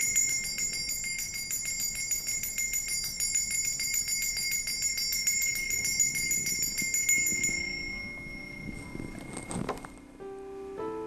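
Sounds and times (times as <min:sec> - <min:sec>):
altar bells jingling: 0:00.0 - 0:10.0.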